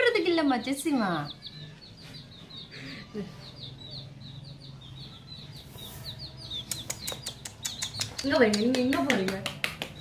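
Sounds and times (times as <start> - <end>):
baby chick peeping: 0.0 - 10.0
sharp clicks: 6.5 - 10.0.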